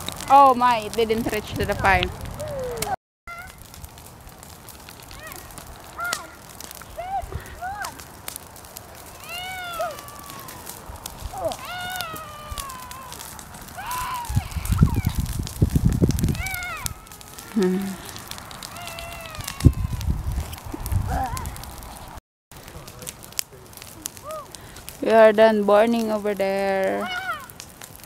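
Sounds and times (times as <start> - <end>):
brush fire crackling: 0.0 - 28.0.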